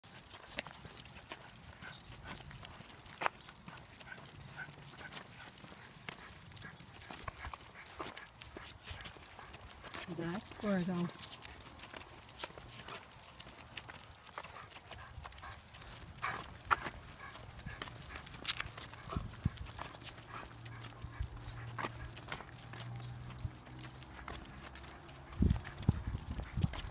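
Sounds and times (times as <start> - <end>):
collar tags jingling: 0.1 - 26.9
dog claws clicking on pavement: 0.1 - 26.9.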